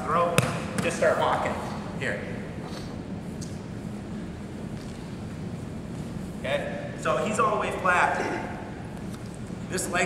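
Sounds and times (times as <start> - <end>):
low room hum and rumble: 0.0 - 10.0.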